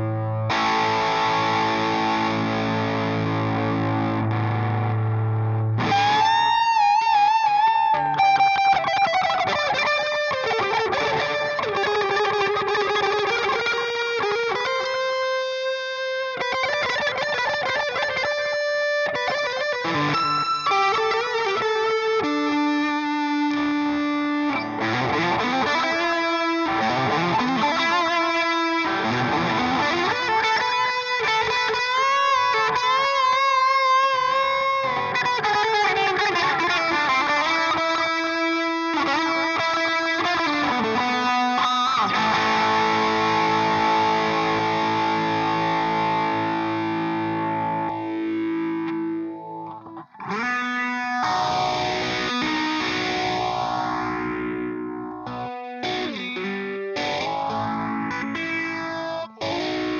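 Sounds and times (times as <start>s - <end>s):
overdriven electric guitar: 0.0s - 59.9s.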